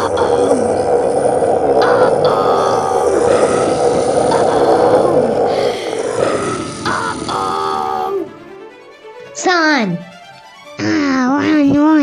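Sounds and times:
monster growl: 0.0s - 8.4s
background music: 0.0s - 12.0s.

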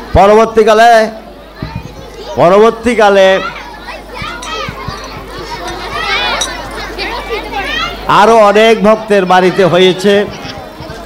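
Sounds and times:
children chattering: 0.0s - 11.0s
man speaking into a microphone: 0.1s - 1.2s, 8.1s - 10.4s.

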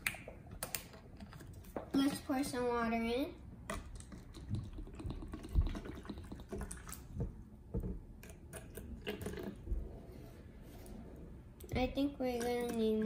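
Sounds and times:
water pouring into plastic cup: 3.9s - 7.2s.

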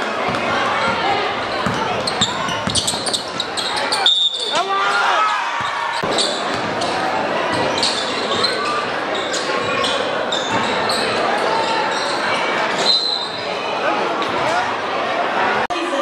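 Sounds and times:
crowd voices and shouts: 0.0s - 16.0s
ball bouncing: 0.2s - 3.5s, 5.6s - 7.8s
sneakers squeaking on hardwood: 0.2s - 13.6s.

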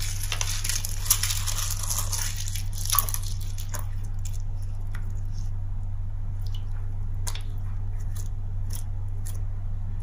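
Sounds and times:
sharp crackles: 0.0s - 4.4s
steady low hum: 0.0s - 10.0s.

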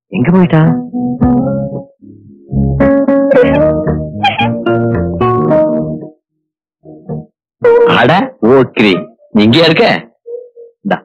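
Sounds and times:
plucked string tune: 0.6s - 1.9s, 2.5s - 6.2s, 6.9s - 9.7s.

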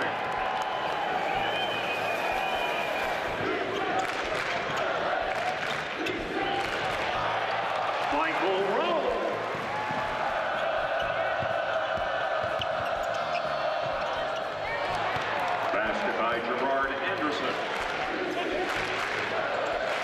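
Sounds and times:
arena hubbub of voices: 0.0s - 20.0s
basketball dribbling and bouncing: 9.4s - 16.0s.

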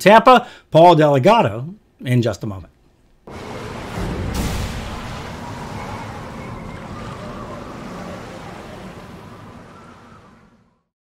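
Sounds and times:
wind: 3.2s - 10.9s
ocean surf: 3.3s - 10.8s.

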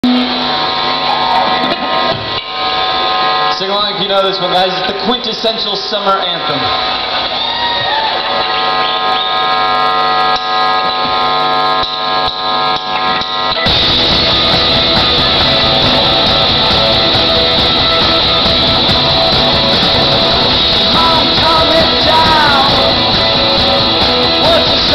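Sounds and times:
electric guitar ringing chords: 0.0s - 4.8s, 8.4s - 24.9s
live rock band: 12.5s - 24.9s.

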